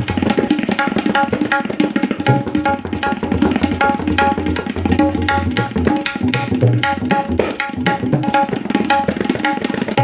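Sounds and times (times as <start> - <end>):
tabla ringing strokes: 0.0 - 10.0.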